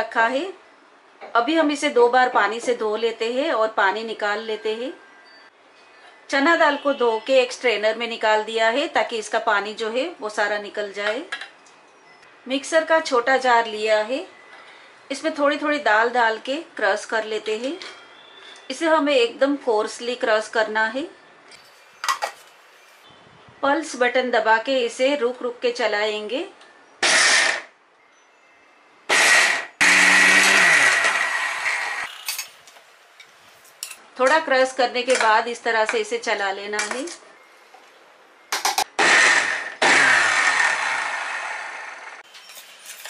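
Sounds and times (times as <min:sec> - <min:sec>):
metal kitchenware clattering: 0:21.6 - 0:22.5, 0:32.1 - 0:32.7, 0:42.2 - 0:43.0
mixer grinder crushing lentils: 0:29.1 - 0:32.5, 0:39.0 - 0:41.9.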